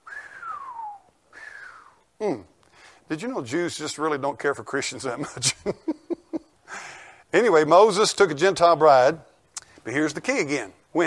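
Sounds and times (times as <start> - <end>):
person whistling falling notes: 0.0 - 2.0.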